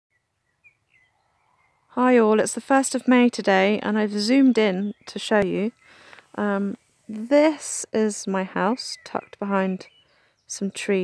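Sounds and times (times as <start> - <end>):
faint bird chirps: 0.1 - 2.2, 8.6 - 11.0.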